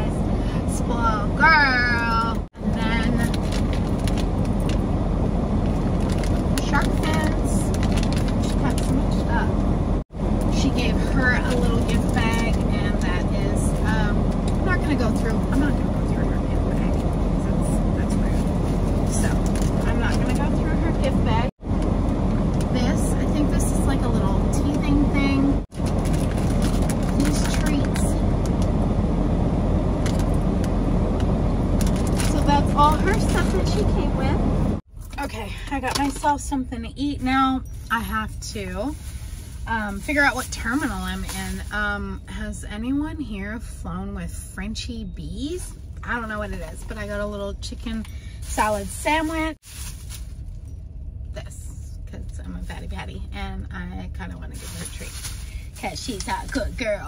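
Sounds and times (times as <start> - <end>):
road and engine noise in vehicle: 0.0 - 57.0.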